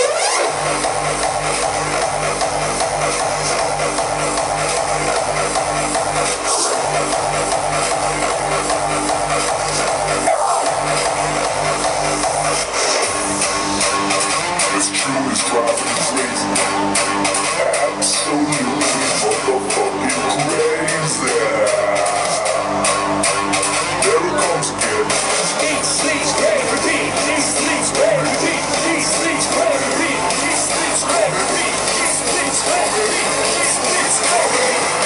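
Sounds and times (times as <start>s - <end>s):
hardstyle dance music: 0.0s - 35.0s.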